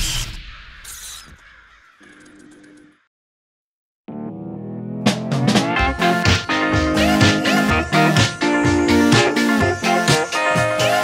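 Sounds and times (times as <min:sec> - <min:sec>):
crow cawing: 0:00.5 - 0:03.1.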